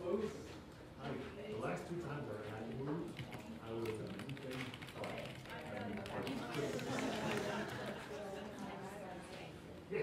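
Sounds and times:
indistinct background chatter: 4.6s - 10.0s.

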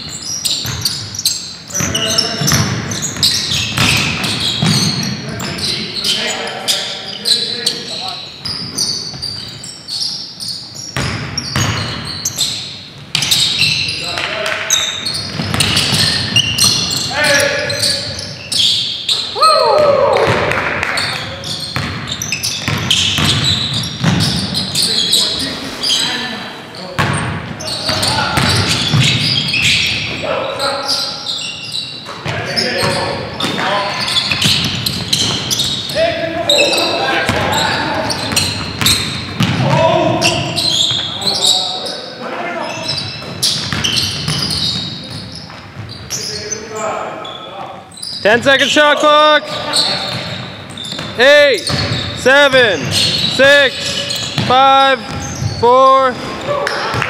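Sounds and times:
basketball bouncing: 0.1s - 5.2s, 11.0s - 12.1s, 15.1s - 17.0s, 20.2s - 24.6s, 27.0s - 30.1s, 34.2s - 35.8s, 37.2s - 40.6s, 43.2s - 46.2s, 50.0s - 52.2s, 52.8s - 55.6s
players shouting: 19.3s - 20.6s, 35.9s - 38.3s.

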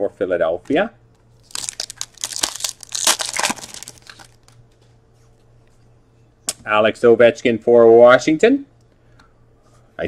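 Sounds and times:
wrapper crinkling and tearing: 1.4s - 4.6s.

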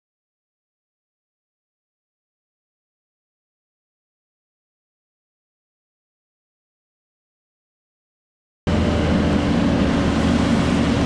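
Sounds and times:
fire engine pump humming: 8.7s - 11.0s.

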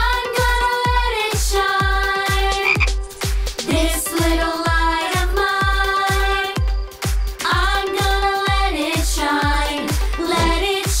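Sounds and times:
children's song with drum beat: 0.0s - 11.0s
cartoon frog croaking: 2.6s - 3.0s.

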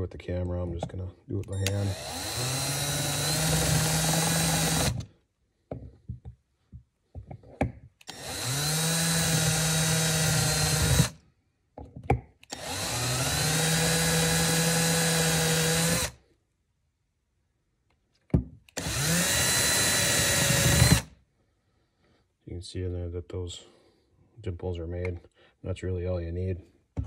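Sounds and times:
hand drill whining: 1.4s - 5.1s, 8.0s - 11.2s, 12.5s - 16.2s, 18.8s - 21.1s.

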